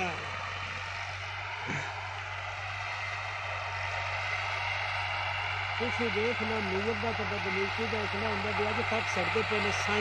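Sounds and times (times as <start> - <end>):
distant tractor engine running: 0.0 - 10.0.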